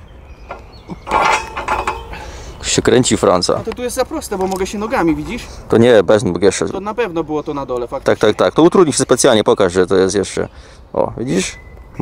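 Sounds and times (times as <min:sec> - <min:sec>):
metal bar creaking: 0:00.4 - 0:02.4.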